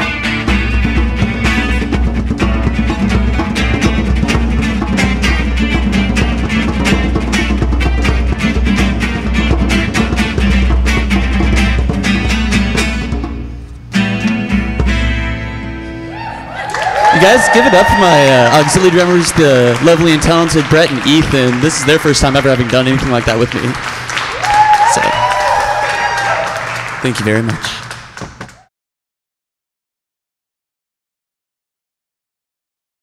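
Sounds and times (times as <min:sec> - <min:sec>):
djembes played by hand: 0:00.0 - 0:13.5
strummed acoustic guitar: 0:00.0 - 0:16.1.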